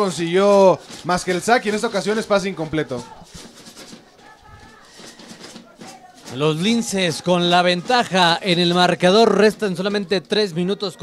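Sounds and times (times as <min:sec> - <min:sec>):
distant indistinct voices: 0:00.0 - 0:11.0.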